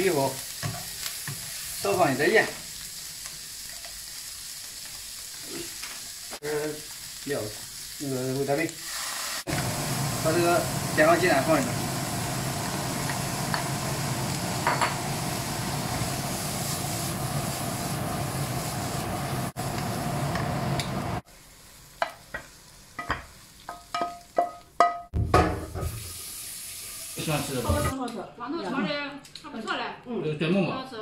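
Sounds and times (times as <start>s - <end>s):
food sizzling in a wok: 0.0s - 28.0s.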